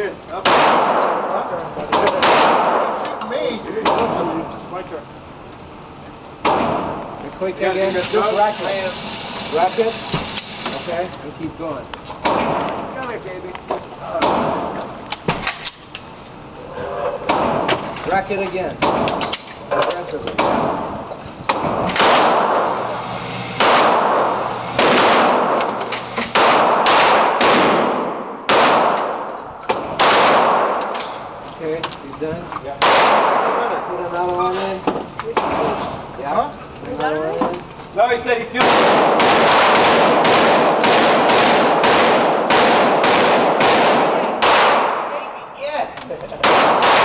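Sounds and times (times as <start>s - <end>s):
pistol shots echoing indoors: 0.4s - 3.2s, 6.4s - 7.0s, 21.5s - 31.4s, 32.8s - 33.9s, 38.6s - 45.4s, 46.4s - 47.0s.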